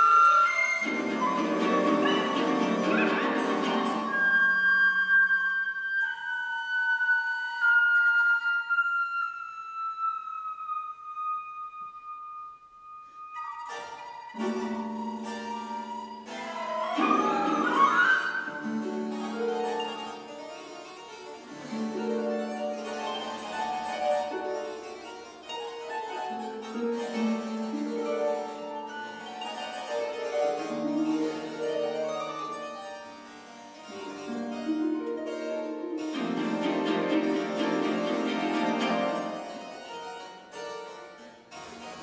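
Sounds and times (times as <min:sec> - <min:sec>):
flute: 0:00.0 - 0:20.4
harpsichord playing chords: 0:00.8 - 0:04.4, 0:14.3 - 0:42.0.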